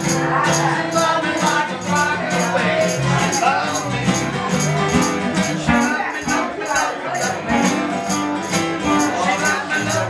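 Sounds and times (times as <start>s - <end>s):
acoustic guitars strumming: 0.0s - 10.0s
amplified guitar: 0.0s - 10.0s
high shaking beat: 0.0s - 10.0s.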